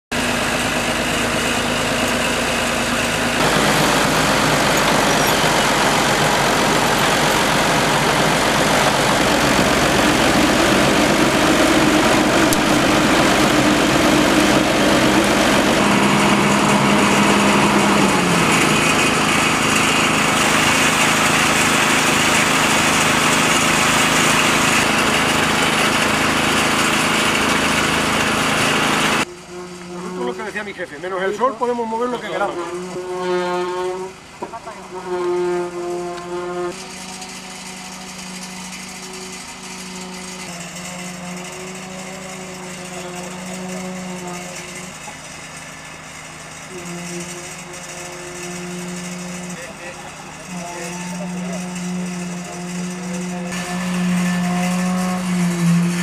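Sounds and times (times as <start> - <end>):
excavator diesel engine: 0.1 - 56.0.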